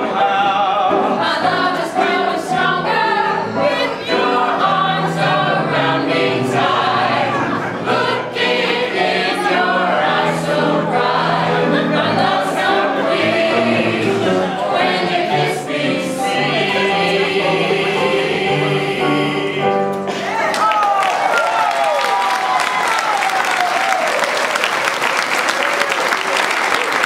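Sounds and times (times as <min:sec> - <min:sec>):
mixed voices singing in harmony: 0:00.0 - 0:20.4.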